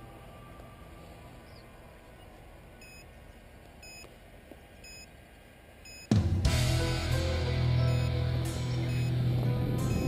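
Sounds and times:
short high electronic beeps: 7.8s - 8.2s, 8.8s - 9.2s.

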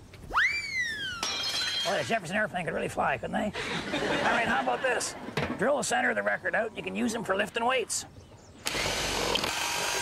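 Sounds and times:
power drill boring through vinyl: 8.6s - 10.0s.

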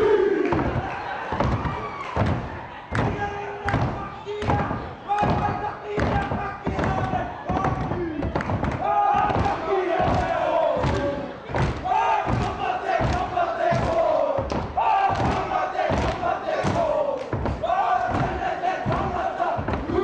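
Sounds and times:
feet stamping on wooden floor: 0.0s - 20.0s
hands slapping: 0.4s - 20.0s
men chanting in unison: 3.0s - 20.0s.

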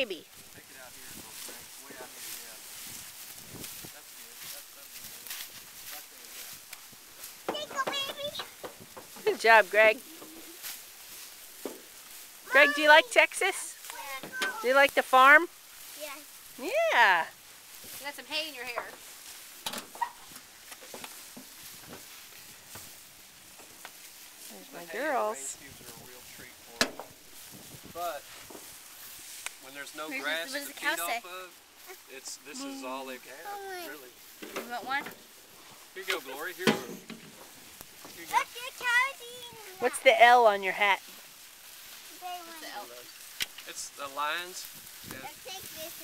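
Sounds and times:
footsteps crunching on hay: 0.0s - 46.0s
faint voices: 9.2s - 10.7s, 12.4s - 15.5s.

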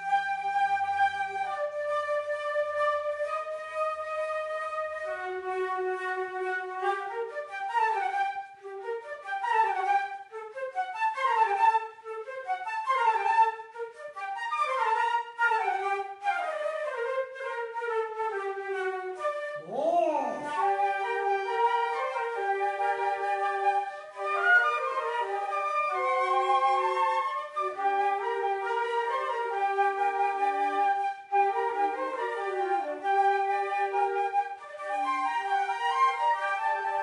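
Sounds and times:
flute ensemble playing: 0.0s - 37.0s.

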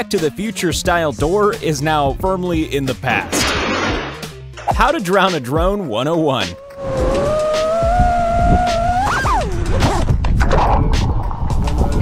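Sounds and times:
drone motors whining: 6.6s - 10.1s.

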